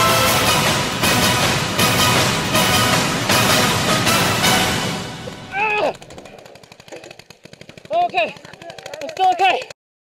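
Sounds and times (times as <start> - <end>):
short falling shout: 5.5 - 6.0.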